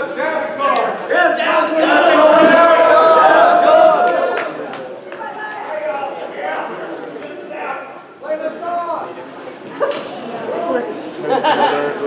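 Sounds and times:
voices in a large hall: 0:00.0 - 0:12.0.

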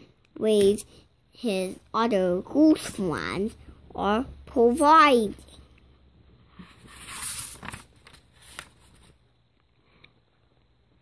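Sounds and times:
paper page turning: 0:06.6 - 0:09.2.

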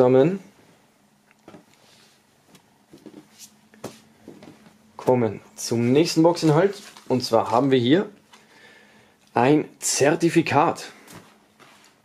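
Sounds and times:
fabric rustling: 0:06.3 - 0:07.7, 0:11.0 - 0:12.0.

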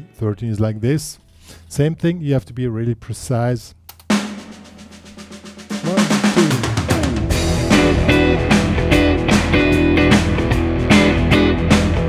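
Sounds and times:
shuffle blues drums: 0:04.0 - 0:12.0
electric guitar shuffle rhythm: 0:06.4 - 0:12.0.

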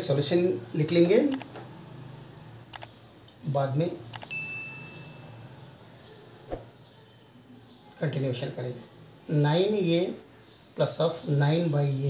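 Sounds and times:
quick clicks: 0:02.7 - 0:03.0, 0:04.1 - 0:04.3
bright bell ding: 0:04.2 - 0:05.6.

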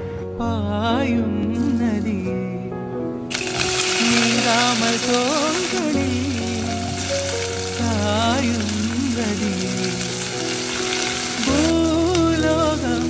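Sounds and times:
song with singing voice: 0:00.0 - 0:13.0
onion sizzling in oil: 0:03.3 - 0:13.0.

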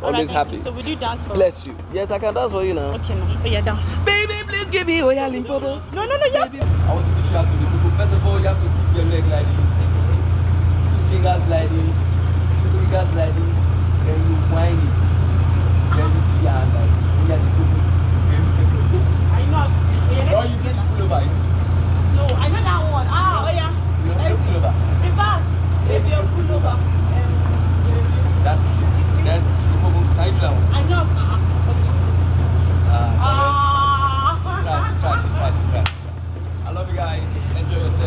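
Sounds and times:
people talking and laughing: 0:00.0 - 0:38.0
low machine hum: 0:02.6 - 0:38.0.

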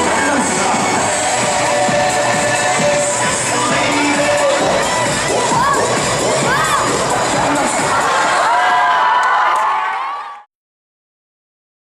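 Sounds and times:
children shouting and cheering: 0:01.1 - 0:10.5.

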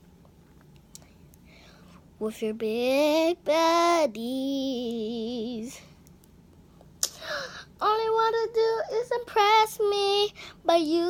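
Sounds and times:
soft breath: 0:01.1 - 0:02.1.

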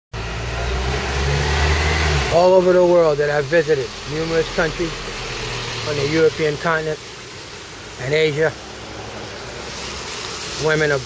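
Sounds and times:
hiss from wet street: 0:00.2 - 0:11.0
truck engine humming: 0:00.2 - 0:11.0.

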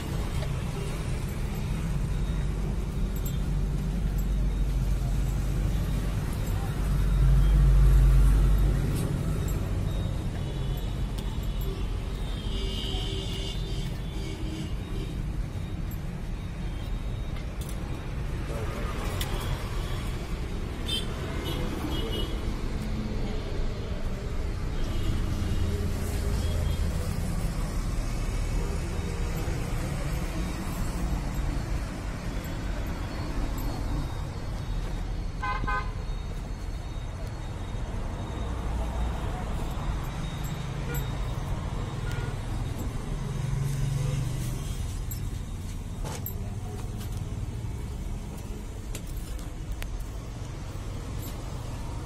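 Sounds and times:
road traffic rumble: 0:00.0 - 0:52.0
voices: 0:00.0 - 0:52.0.

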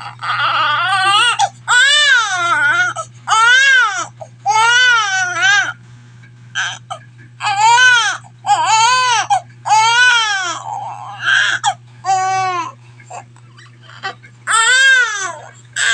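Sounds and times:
baby crying: 0:00.0 - 0:05.8, 0:06.6 - 0:13.3, 0:13.9 - 0:15.9.

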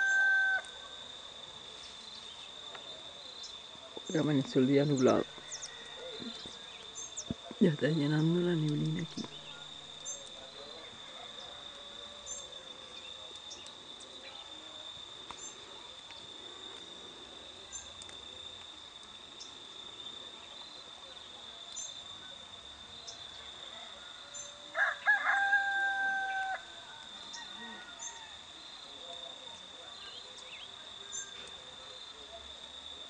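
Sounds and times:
rooster crowing: 0:00.0 - 0:01.2, 0:05.2 - 0:06.9, 0:11.0 - 0:13.0, 0:23.6 - 0:28.6.

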